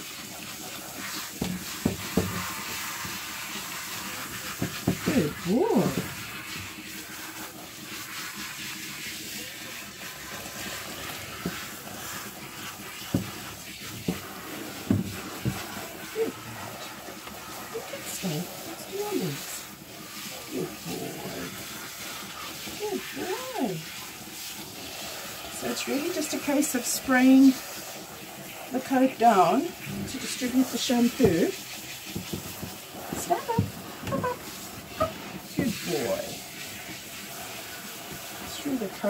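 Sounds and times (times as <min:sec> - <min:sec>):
water spraying from nozzle: 0:00.0 - 0:39.0.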